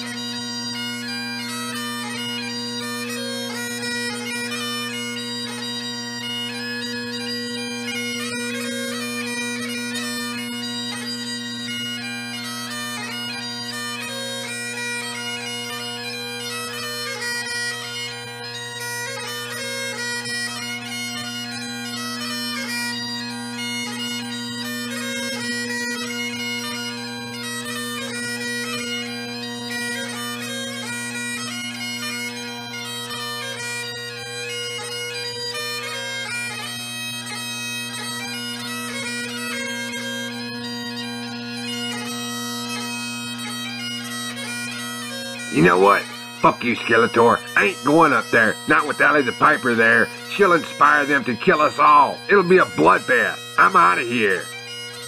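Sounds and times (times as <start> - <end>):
bagpipes playing a tune: 0.0 - 55.0.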